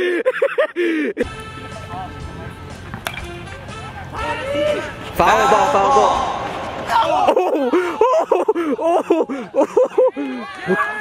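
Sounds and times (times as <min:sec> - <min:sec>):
background music: 0:01.2 - 0:07.5
baseball bat hitting ball: 0:02.7 - 0:04.2.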